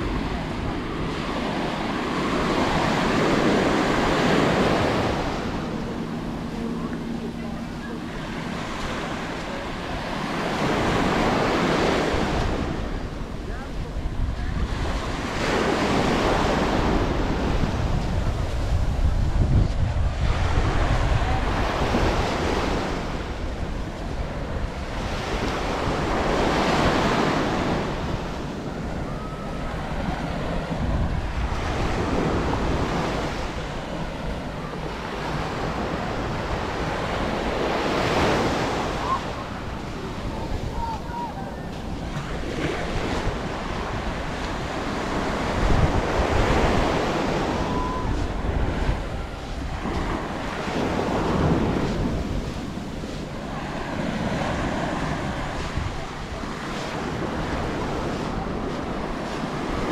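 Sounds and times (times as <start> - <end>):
waves washing up beach: 0.0 - 59.9
wind rumbling on microphone: 0.0 - 59.9.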